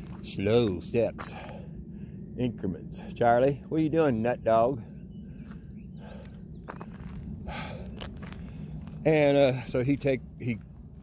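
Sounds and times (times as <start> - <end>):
footsteps on asphalt: 0.0 - 1.6, 5.4 - 11.0
steady low rumble: 0.0 - 11.0.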